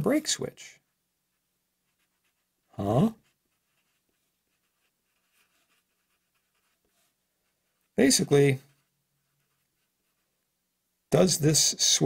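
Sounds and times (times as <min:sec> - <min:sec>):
marker scratching on paper: 0:01.3 - 0:10.4.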